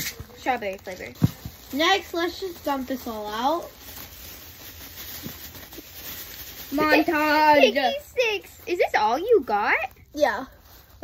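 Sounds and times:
small objects tapping: 0.0 - 4.0
plastic bag rustling: 0.0 - 11.0.

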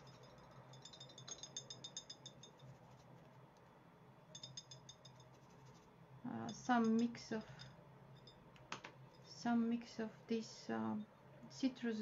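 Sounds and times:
brush ticking rapidly: 0.0 - 3.2, 4.4 - 5.9
faint low hum: 0.0 - 12.0.

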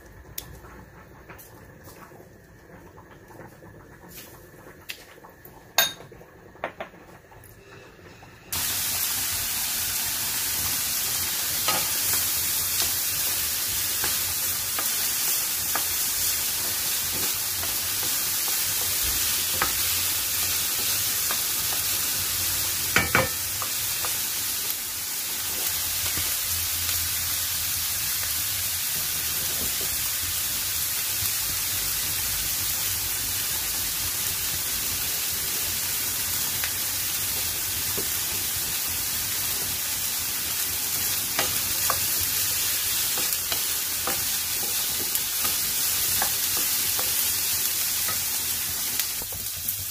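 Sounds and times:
vegetables sizzling in a pan: 0.0 - 49.9.

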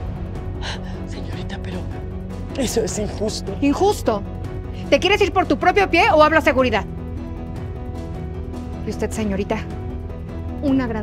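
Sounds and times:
dramatic background music: 0.0 - 11.0.

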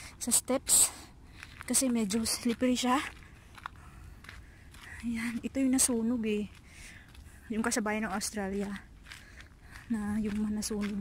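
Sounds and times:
footsteps crunching on gravel: 0.3 - 11.0.

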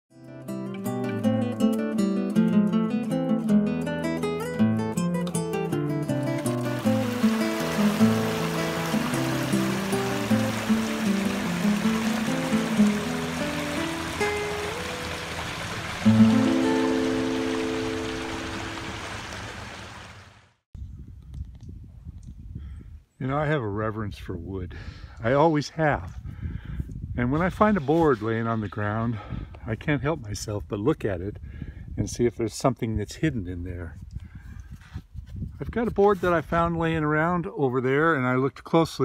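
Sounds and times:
plucked acoustic guitar music: 0.1 - 19.0
creek flowing: 6.0 - 20.6.

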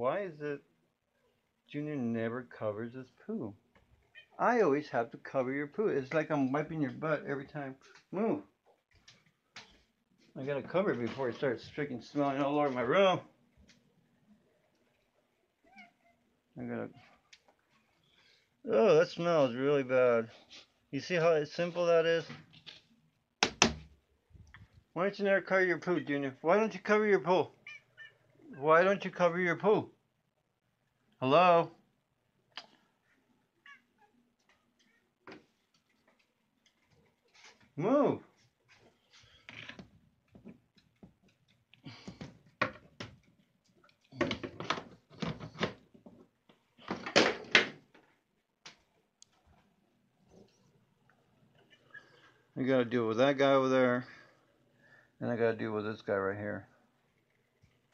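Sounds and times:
sharp knocks: 23.4 - 23.9.

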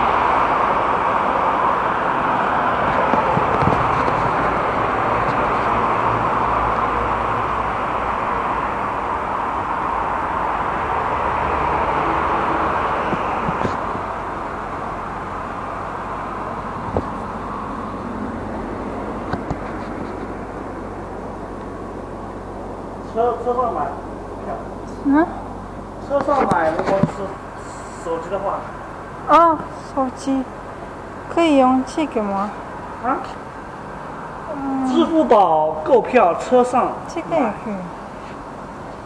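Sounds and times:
tram and road traffic: 0.0 - 39.0.

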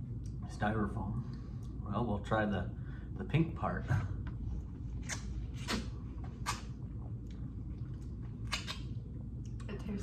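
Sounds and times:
wet biting and slurping: 4.9 - 9.6.

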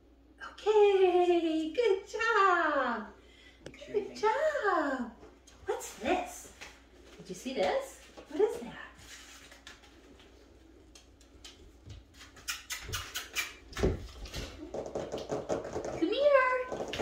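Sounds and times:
dog claws clicking on hard floor: 10.8 - 17.0.

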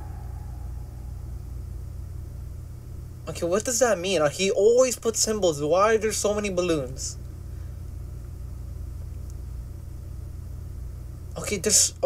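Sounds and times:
low rumble and hum: 0.0 - 12.0.

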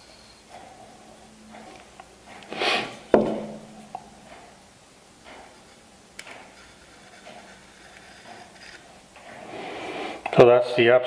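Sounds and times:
sharp wooden knock: 3.1 - 3.7
pencil scratching on wood: 6.5 - 10.2.

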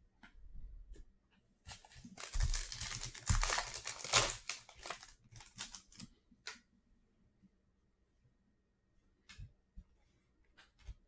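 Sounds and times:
foil pack tearing and crinkling: 1.9 - 6.0.

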